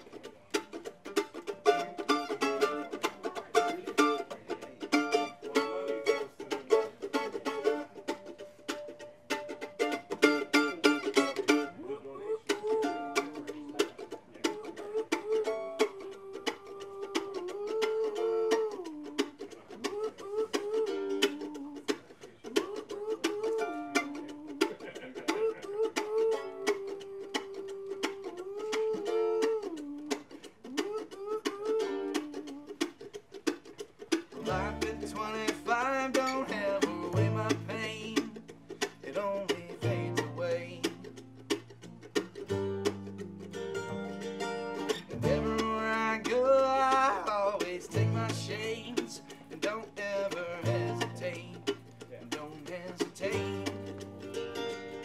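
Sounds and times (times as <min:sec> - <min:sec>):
acoustic guitar: 0:00.0 - 0:55.0
mandolin: 0:00.0 - 0:55.0
upright double bass: 0:00.5 - 0:11.8, 0:34.3 - 0:55.0.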